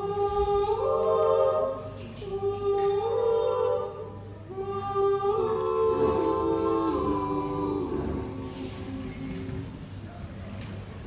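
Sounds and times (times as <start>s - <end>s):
women singing a cappella: 0.0s - 9.6s.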